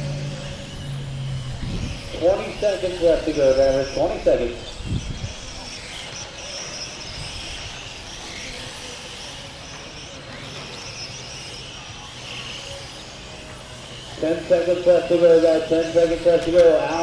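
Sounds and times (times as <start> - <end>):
rc car motors whining: 0.0 - 17.0.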